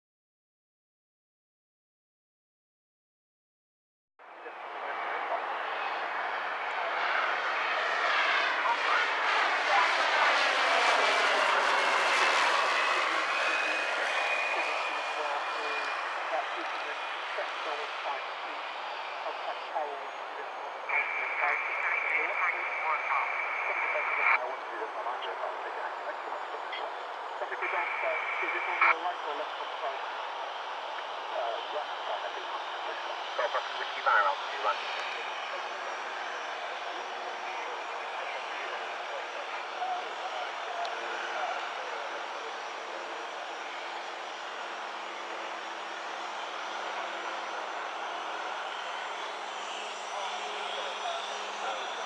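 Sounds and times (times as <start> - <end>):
propeller aircraft passing by: 4.6 - 24.0, 24.8 - 52.0.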